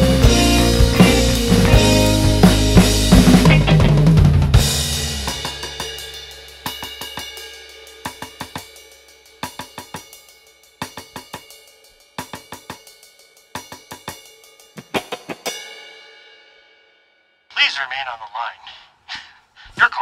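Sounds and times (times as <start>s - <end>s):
bass guitar note ringing: 0.0s - 5.4s
cymbal ringing: 4.6s - 14.8s
drumstick taps on cymbals: 6.7s - 14.4s.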